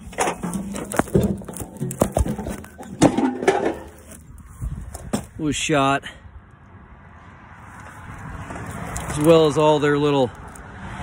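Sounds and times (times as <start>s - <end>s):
metal scraping: 0.0s - 5.3s.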